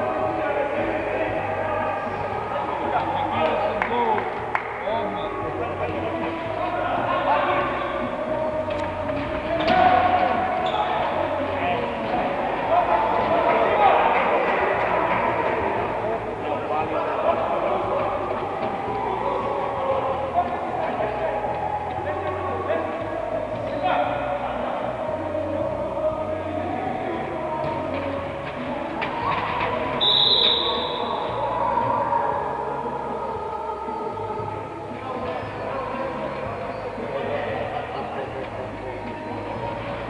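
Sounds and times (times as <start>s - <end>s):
echoing sports hall background: 0.0s - 40.0s
referee's whistle blast: 30.0s - 31.2s.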